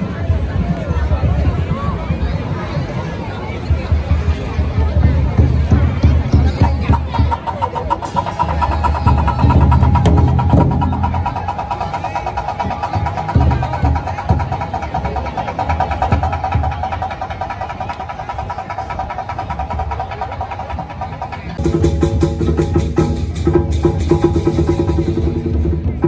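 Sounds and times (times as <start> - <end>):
drum roll on large drums: 3.7 - 26.0.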